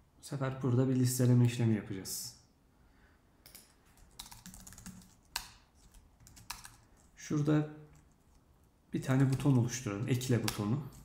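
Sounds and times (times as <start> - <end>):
computer keyboard typing: 4.0 - 7.1, 9.2 - 9.5.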